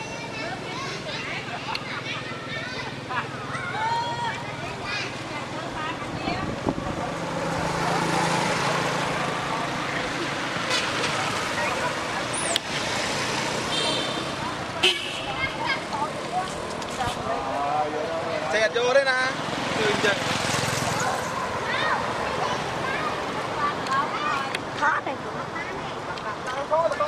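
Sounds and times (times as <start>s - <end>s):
distant people's voices: 0.0s - 27.0s
vehicle traffic: 0.0s - 27.0s.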